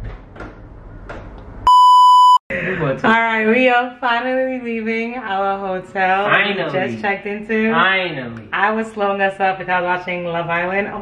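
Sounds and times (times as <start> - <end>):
steady electronic beep: 1.7 - 2.4.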